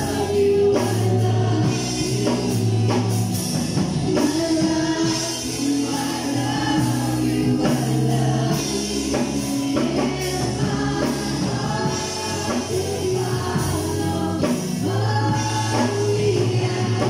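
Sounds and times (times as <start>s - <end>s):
person singing into a microphone: 0.0s - 3.4s, 4.1s - 17.0s
electric keyboard: 0.0s - 17.0s
low bass notes: 0.0s - 17.0s.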